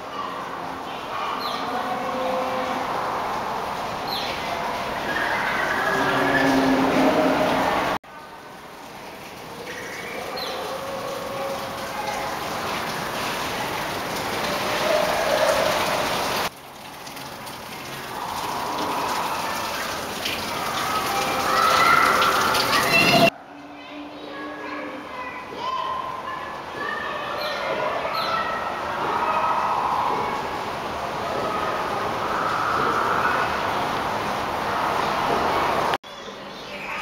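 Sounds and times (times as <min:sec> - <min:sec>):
distant voices: 0:00.0 - 0:37.0.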